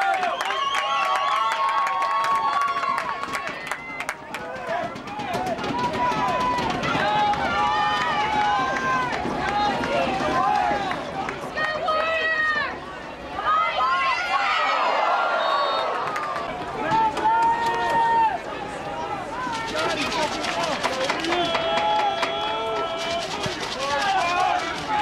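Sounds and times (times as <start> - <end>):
voices shouting outdoors: 0.0 - 25.0.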